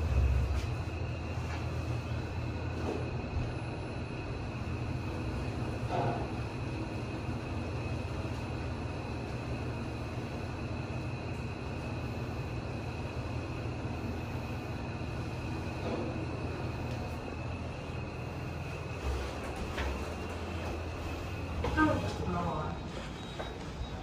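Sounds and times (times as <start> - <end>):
high-pitched whine: 0.0 - 24.0
lift ride low rumble: 0.0 - 24.0.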